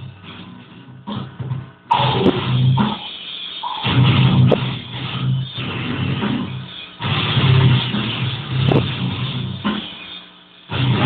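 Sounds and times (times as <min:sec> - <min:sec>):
heavy metal music: 0:00.0 - 0:11.0.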